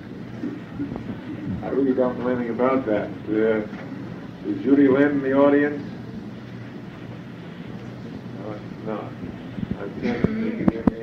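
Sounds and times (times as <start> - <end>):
low hum: 0.0 - 11.0
tape hiss: 0.0 - 11.0.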